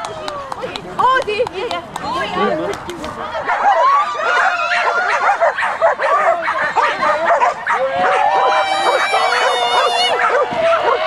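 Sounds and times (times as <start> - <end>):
dogs barking and yipping: 3.4 - 11.0.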